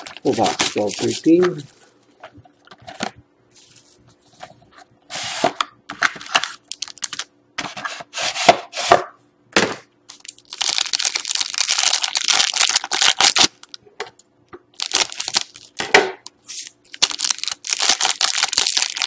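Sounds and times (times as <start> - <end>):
foil pack crinkling: 0.0 - 2.0, 6.0 - 7.3, 10.1 - 13.8, 14.7 - 15.8, 16.4 - 19.0.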